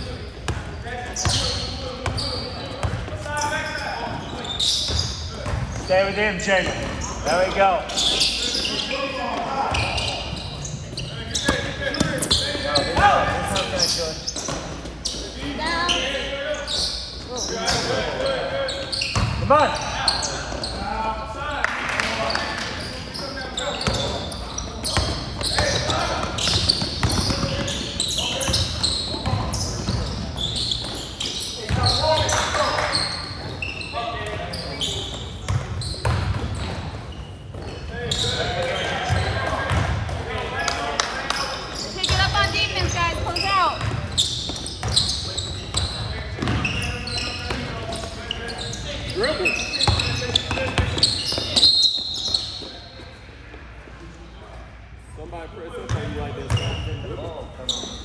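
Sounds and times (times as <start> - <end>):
sneakers squeaking: 0.0 - 21.1, 22.0 - 53.5, 55.7 - 58.0
basketball bouncing on court: 0.5 - 3.2, 4.9 - 5.9, 19.2 - 19.5, 24.9 - 30.2, 35.4 - 37.6, 39.0 - 40.2, 42.0 - 48.1, 49.8 - 51.6.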